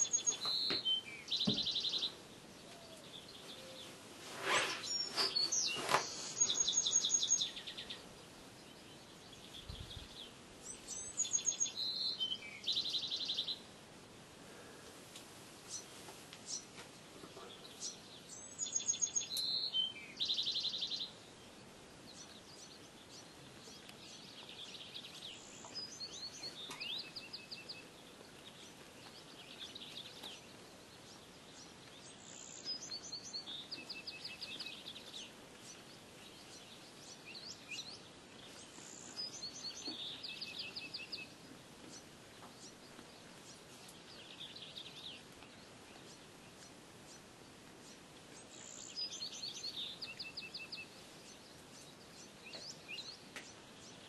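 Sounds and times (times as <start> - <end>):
faint bird chirps: 0.0 - 13.6
songbird trilling song: 0.0 - 13.7, 15.7 - 54.0
faint outdoor hiss: 0.0 - 54.0.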